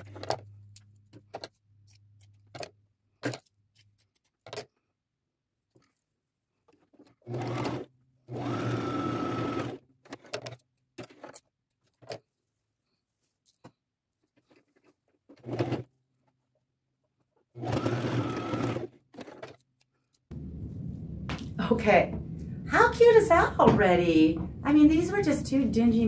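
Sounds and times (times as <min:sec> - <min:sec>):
sewing machine stitching: 0:06.8 - 0:11.4, 0:15.3 - 0:15.9, 0:17.5 - 0:19.6.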